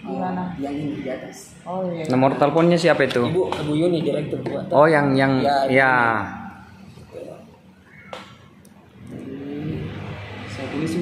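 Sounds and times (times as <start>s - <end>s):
motor vehicle engine: 8.8s - 11.0s.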